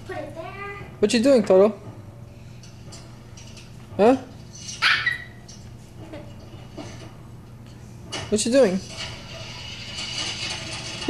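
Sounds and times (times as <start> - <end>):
small dog barking: 4.8 - 5.4.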